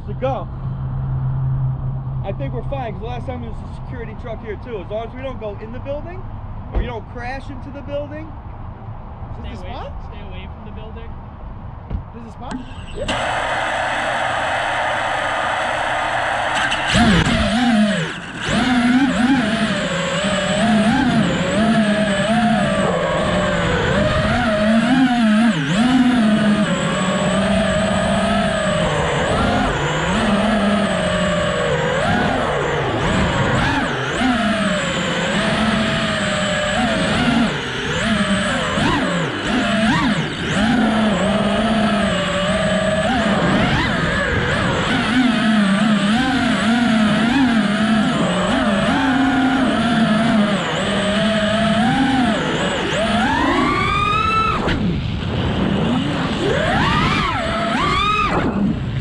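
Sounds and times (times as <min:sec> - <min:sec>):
drone motors and propellers whining: 0:00.0 - 0:59.0.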